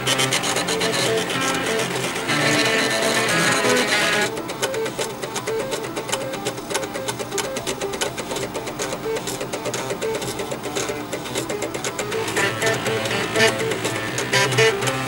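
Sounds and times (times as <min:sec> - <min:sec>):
floppy drive motors playing tune: 0:00.0 - 0:15.0.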